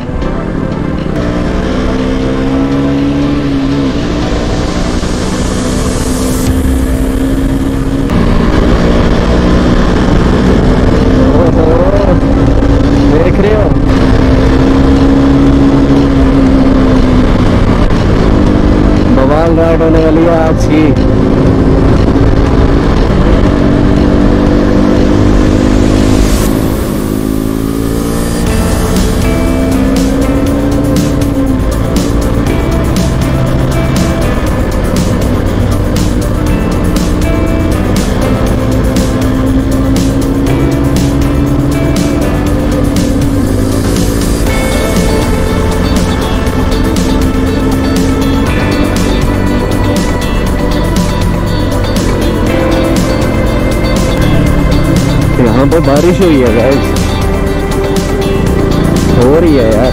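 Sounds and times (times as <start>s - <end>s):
motorcycle engine running: 0.0s - 59.9s
background music with beat: 27.6s - 59.9s.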